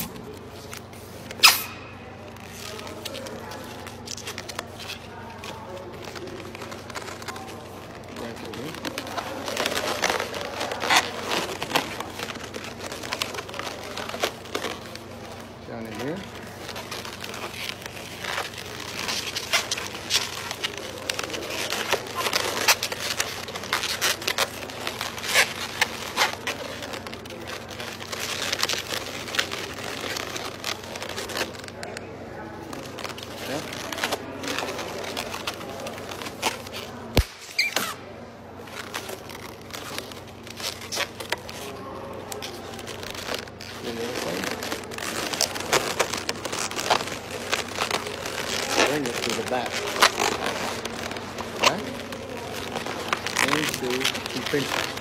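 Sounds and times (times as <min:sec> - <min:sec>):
rubber balloons squeaking: 0:00.0 - 0:31.8, 0:32.7 - 0:55.0.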